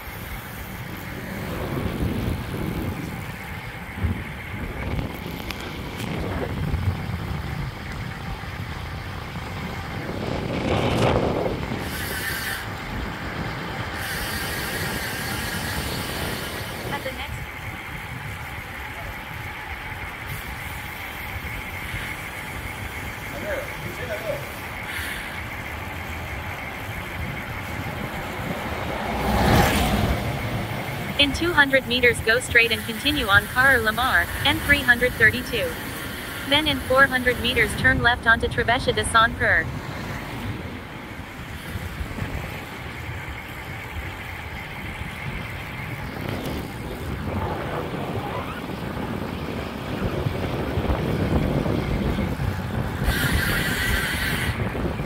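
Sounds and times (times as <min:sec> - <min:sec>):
passing traffic: 0:00.0 - 0:55.0
wind and road noise: 0:00.0 - 0:55.0.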